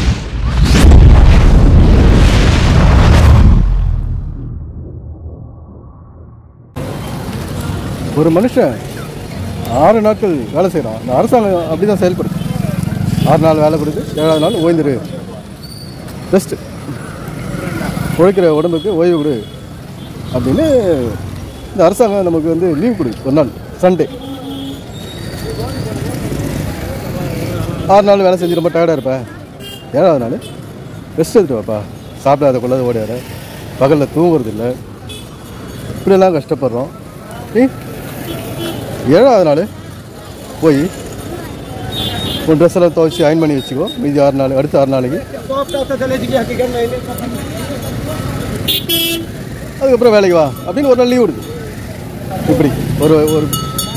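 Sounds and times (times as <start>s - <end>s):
deep boom with low rumble: 0.0s - 6.8s
rising whoosh: 0.0s - 7.0s
traffic rumble: 0.0s - 53.9s
crowd chatter: 22.2s - 29.8s, 36.7s - 53.9s.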